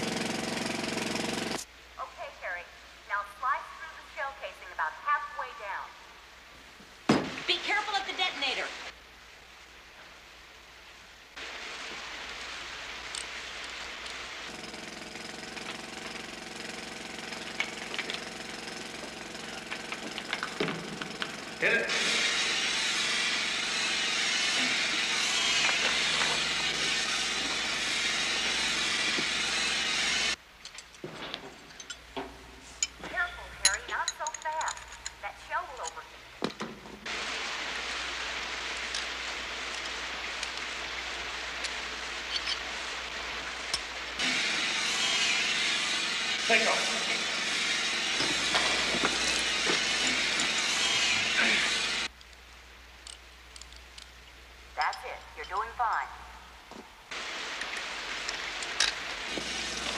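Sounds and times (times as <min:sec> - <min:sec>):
knocks and clanks: 0:19.0 - 0:21.5
machine roar with hiss: 0:20.5 - 0:30.4, 0:43.4 - 0:52.1, 0:57.1 - 0:59.9.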